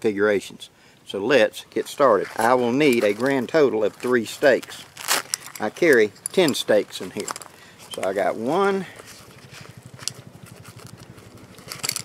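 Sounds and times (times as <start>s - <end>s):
metal stakes clicking: 4.0s - 8.2s, 9.9s - 12.0s.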